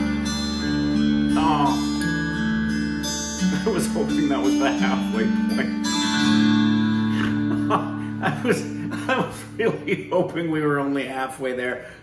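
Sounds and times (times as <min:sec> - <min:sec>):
picked electric guitar notes: 0:00.0 - 0:10.4.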